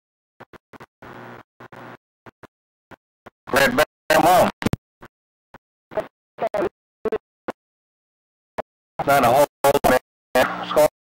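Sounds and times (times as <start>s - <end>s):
voice over cb radio: 3.5s - 4.8s, 9.0s - 11.0s.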